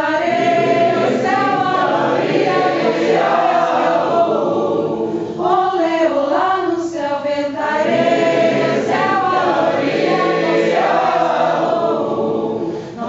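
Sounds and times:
mixed choir singing a cappella: 0.0s - 13.0s.

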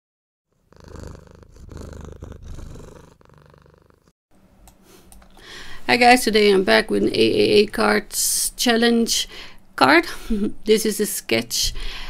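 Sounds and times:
cat purring: 0.5s - 4.1s.

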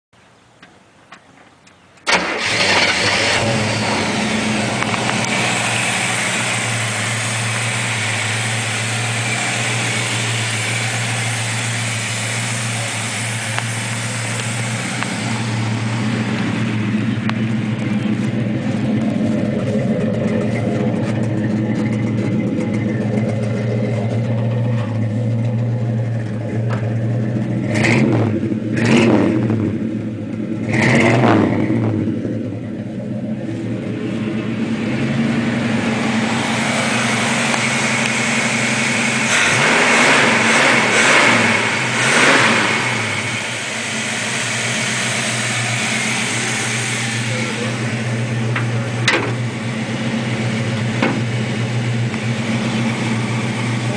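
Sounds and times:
car engine idling and revving: 1.2s - 53.9s.

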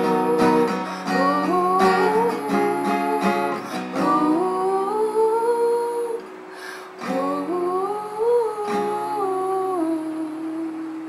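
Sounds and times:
woman humming melody: 0.0s - 6.3s, 7.0s - 11.0s
acoustic guitar strums: 0.0s - 10.1s.

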